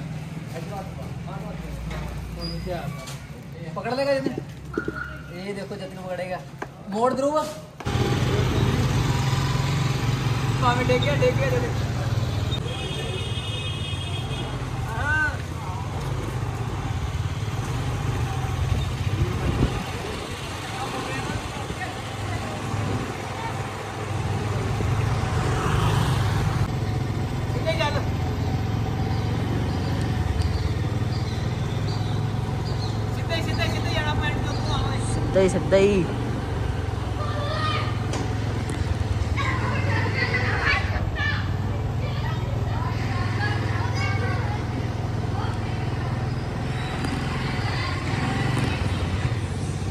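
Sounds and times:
motorcycle engine running: 7.8 - 12.6.

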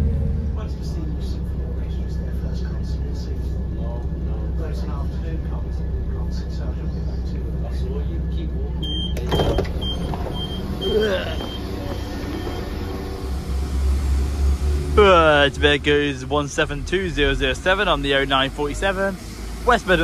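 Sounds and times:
diesel engine rumble: 0.0 - 20.0
diesel train humming: 0.0 - 20.0
high door warning beeps: 8.8 - 12.9
train door clunk and slide: 9.2 - 10.4.

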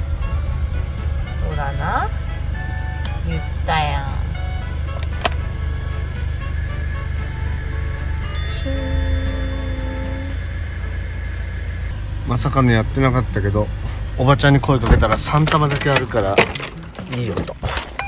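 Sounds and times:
background music: 0.0 - 10.6
van engine and road rumble: 0.0 - 18.0.

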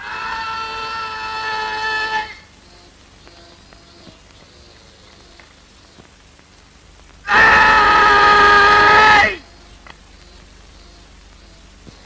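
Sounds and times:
young man shouting: 7.3 - 9.4.

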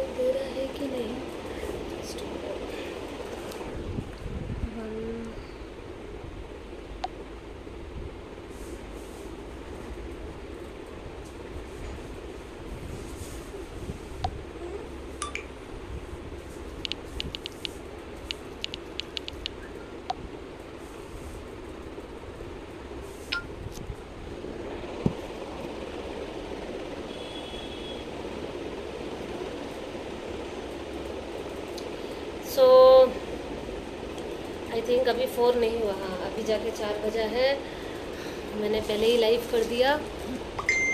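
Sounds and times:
low rumbling background noise: 0.0 - 40.9
steady background hiss: 0.0 - 40.9.

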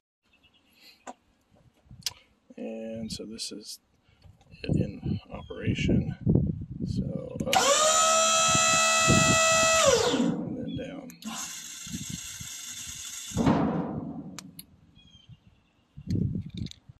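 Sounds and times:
hydraulic pump motor whine: 7.5 - 10.4, 11.2 - 13.5
trailer bed thump: 13.4 - 14.6.

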